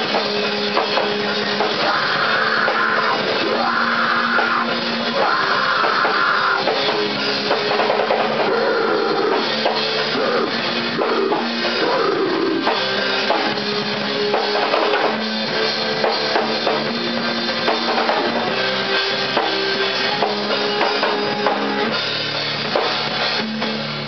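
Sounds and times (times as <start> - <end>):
rock band playing live: 0.0 - 24.0.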